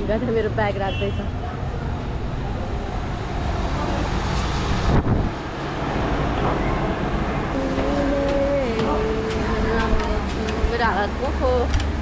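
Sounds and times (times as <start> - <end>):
vehicle road noise: 0.0 - 12.0.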